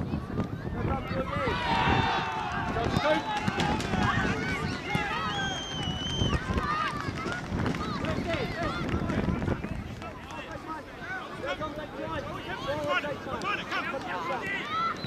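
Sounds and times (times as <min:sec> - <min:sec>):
voices shouting over one another: 0:01.0 - 0:05.6.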